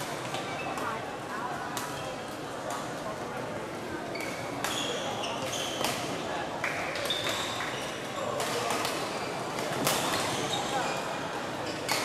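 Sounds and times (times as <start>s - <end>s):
chatter in sports hall: 0.0s - 12.0s.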